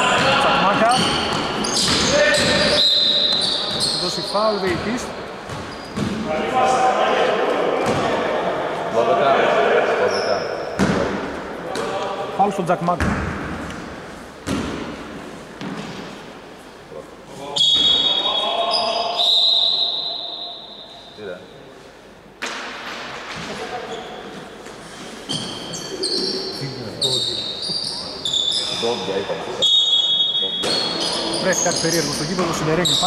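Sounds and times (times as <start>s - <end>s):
shoes squeaking on hardwood floor: 0.0s - 6.3s, 23.4s - 33.0s
players' voices echoing: 0.0s - 16.2s, 16.8s - 33.0s.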